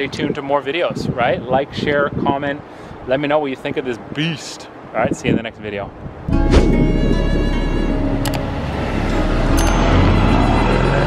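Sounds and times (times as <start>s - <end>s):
background music: 6.3s - 11.0s
car engine driving past: 8.1s - 11.0s.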